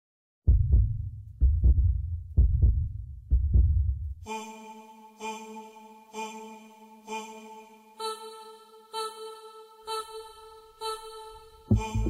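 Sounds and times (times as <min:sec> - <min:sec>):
heartbeat thumps: 0:00.5 - 0:04.2, 0:11.7 - 0:12.0.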